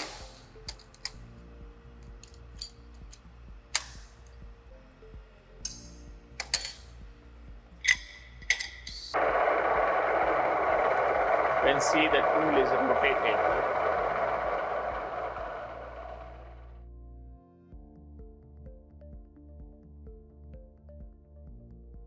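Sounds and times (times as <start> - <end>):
faint machine hum: 0.1 - 16.8
metallic clicks of steel plates: 5.6 - 6.9
welding machine running: 9.2 - 16.8.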